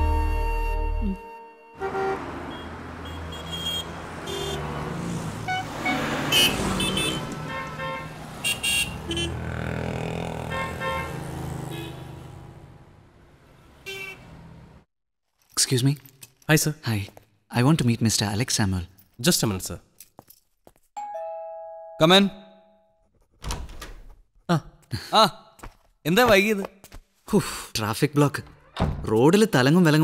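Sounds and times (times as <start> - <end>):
street traffic: 1.6 - 14.9
car horn toots: 1.7 - 4.8, 5.4 - 9.4, 10.4 - 12.2, 13.8 - 14.3.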